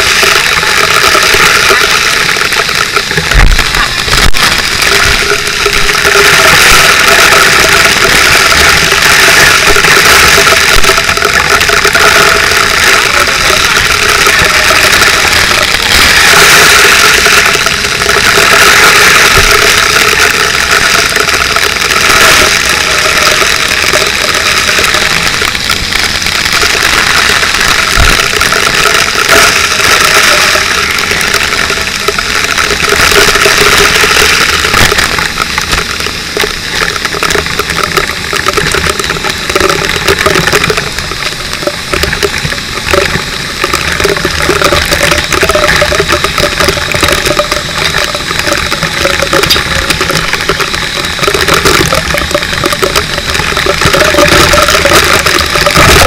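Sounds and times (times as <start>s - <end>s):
fire hose spraying water: 0.0s - 56.0s
pump engine running: 0.0s - 56.0s.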